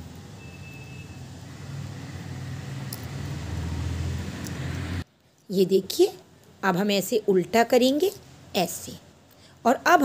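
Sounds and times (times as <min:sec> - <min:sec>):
knitting needles clicking: 0:02.8 - 0:05.5.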